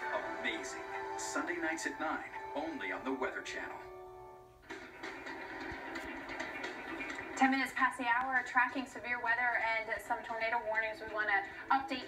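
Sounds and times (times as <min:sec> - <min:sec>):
noise-like sound effect from tv: 0:00.0 - 0:12.0.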